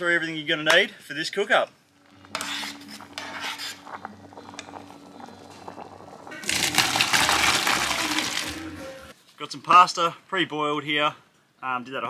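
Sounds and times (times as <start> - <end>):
background music with low notes: 2.0 - 9.2
pasta and water poured into colander: 4.5 - 9.1.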